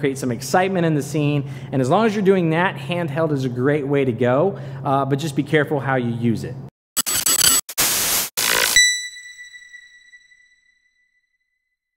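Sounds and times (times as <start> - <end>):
glitchy static bursts: 7.0 - 9.1.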